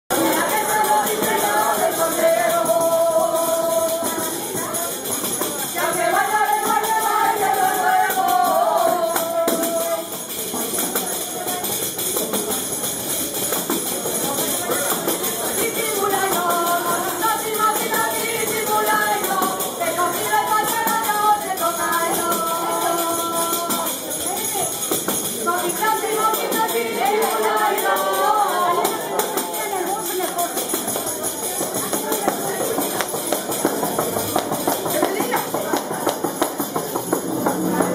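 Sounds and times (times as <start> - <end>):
jingling frame drums: 0.1 - 37.9
people singing folk tune: 0.1 - 37.9
tambourines beaten in rhythm: 0.1 - 37.9.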